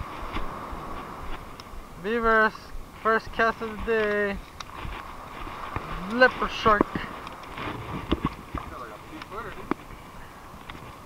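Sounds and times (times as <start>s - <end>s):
surf and wind hiss: 0.0s - 11.0s.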